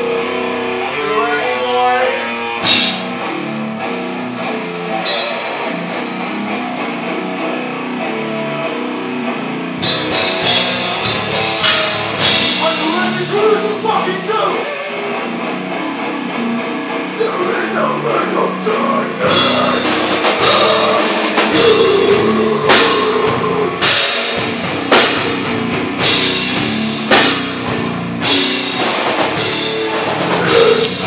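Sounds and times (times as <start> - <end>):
hardcore band playing: 0.0 - 31.0
cymbal crashes: 2.6 - 3.1.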